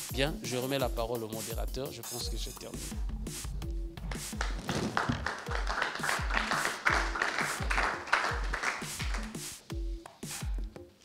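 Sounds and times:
music with deep bass beat: 0.0 - 10.9
audience applause: 4.1 - 9.4.

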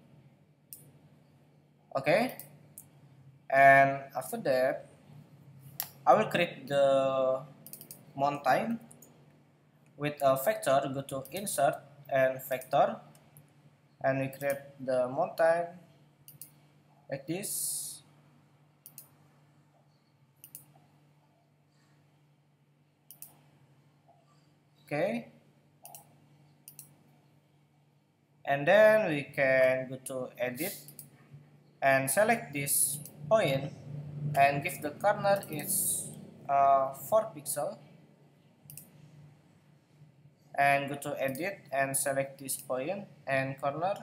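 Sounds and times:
faint steady low hum: 0.0 - 44.0
computer mouse clicks: 7.6 - 8.1, 14.4 - 14.6, 16.3 - 16.6, 18.8 - 19.2, 20.4 - 20.8, 23.1 - 23.4, 25.8 - 27.0, 30.6 - 31.2, 38.7 - 39.0.

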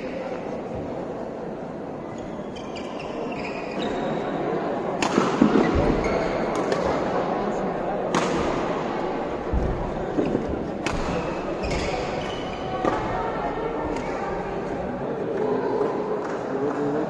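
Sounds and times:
murmur of spectators' voices: 0.0 - 17.0
rackets striking shuttlecock: 4.9 - 7.2, 8.1 - 8.8, 10.2 - 12.2.

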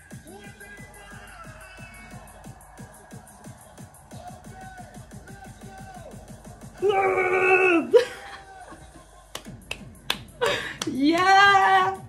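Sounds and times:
electronic dance music: 0.0 - 12.0
vocal whoop: 6.8 - 8.8
finger snaps: 9.3 - 11.3.

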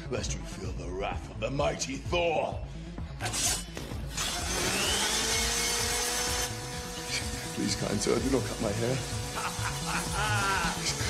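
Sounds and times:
hair-cutting machine whirring: 4.1 - 11.0.

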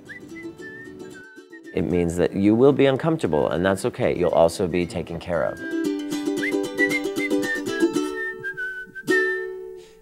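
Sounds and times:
whistled melody: 0.0 - 2.0, 4.9 - 10.0
strummed string instrument: 0.0 - 10.0.

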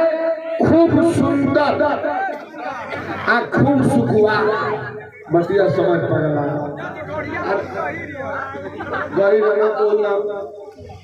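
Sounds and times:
voices chattering: 1.5 - 11.0.

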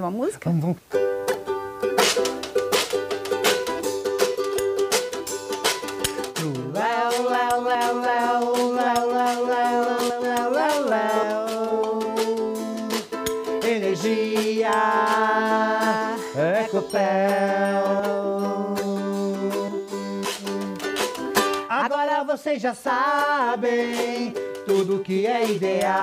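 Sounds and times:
ukulele strumming: 0.9 - 26.0
person singing long notes: 6.2 - 20.9.

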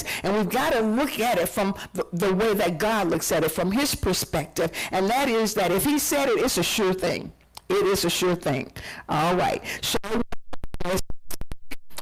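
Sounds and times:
woman speaking: 0.0 - 10.2.

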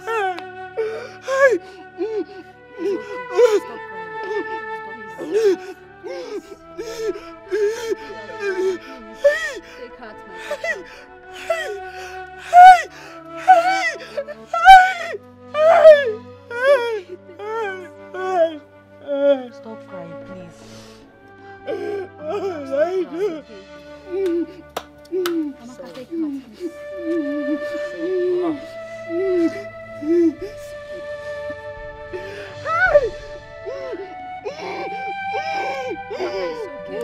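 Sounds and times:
woman wailing: 0.0 - 9.7, 10.3 - 11.8, 12.4 - 19.5, 21.7 - 23.4, 24.1 - 37.0
background music: 0.0 - 37.0.

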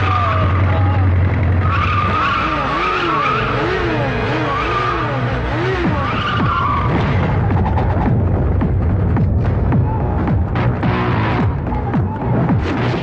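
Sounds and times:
motorcycle engine revving: 0.0 - 13.0
tyre squeal: 1.6 - 7.9.

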